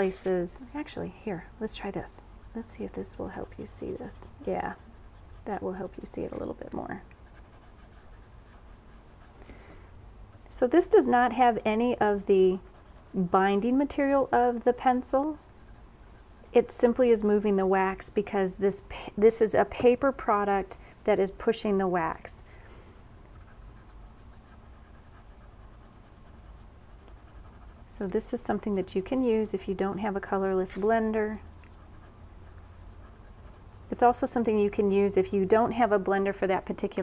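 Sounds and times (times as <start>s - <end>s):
paper stump scratching on paper: 0.0s - 9.4s, 10.8s - 17.5s, 23.3s - 34.4s
low steady hum: 0.0s - 37.0s.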